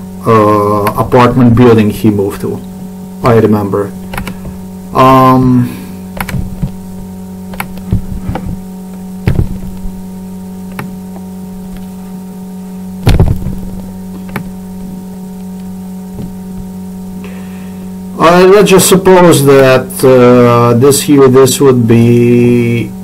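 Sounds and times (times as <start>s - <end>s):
high steady tones: 0.0s - 20.6s
electrical mains hum: 0.0s - 23.0s
mouse clicks and knocks: 4.1s - 4.4s, 6.2s - 6.8s, 7.5s - 8.6s, 10.7s - 11.0s, 14.2s - 14.5s
low thump: 6.2s - 6.8s, 7.6s - 8.6s, 9.2s - 9.8s, 13.0s - 14.5s, 16.1s - 16.7s.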